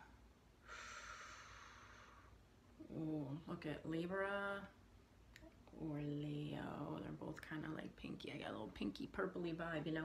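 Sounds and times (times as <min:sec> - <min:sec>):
faint breath out: 0:00.6 - 0:02.4.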